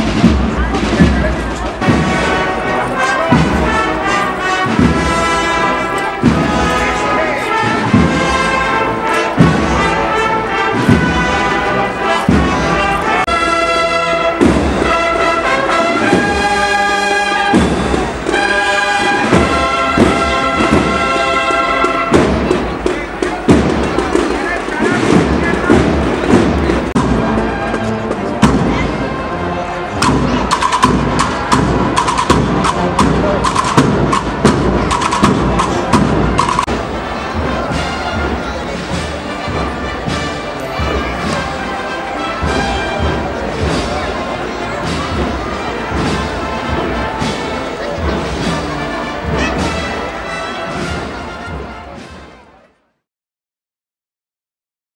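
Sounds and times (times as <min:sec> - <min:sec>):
drum beats: 0:00.0 - 0:29.3, 0:29.9 - 0:52.6
brass band playing a march: 0:00.0 - 0:53.0.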